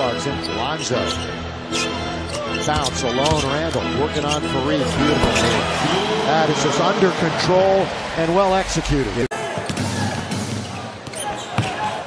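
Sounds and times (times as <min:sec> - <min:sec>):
arena crowd noise: 0:04.3 - 0:12.0.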